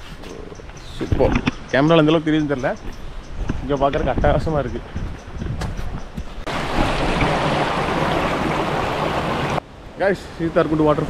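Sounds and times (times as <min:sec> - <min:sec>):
wind buffeting microphone: 0:00.6 - 0:09.6
water rushing down a stream: 0:06.5 - 0:09.6.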